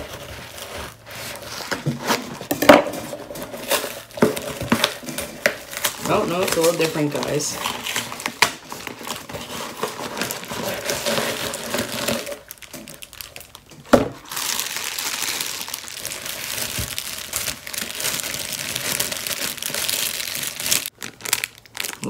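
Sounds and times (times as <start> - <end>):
plastic packaging crinkling: 0.0 - 22.0.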